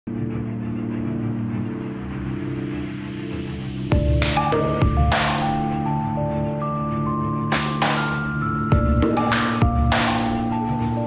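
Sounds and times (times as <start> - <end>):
sustained drone music: 0.1 - 11.0
pulsing bass: 3.6 - 11.0.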